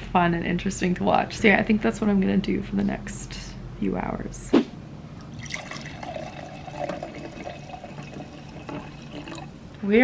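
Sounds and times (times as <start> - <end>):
wine pouring into a glass: 5.2 - 9.6.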